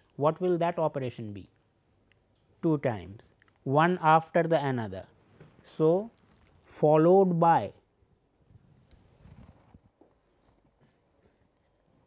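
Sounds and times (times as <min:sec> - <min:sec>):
room hiss: 0:00.0 - 0:12.0.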